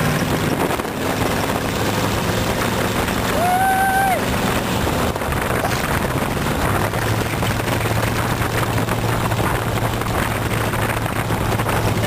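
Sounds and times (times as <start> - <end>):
car engine droning: 0.0 - 12.0
rough rushing wind noise: 0.0 - 12.0.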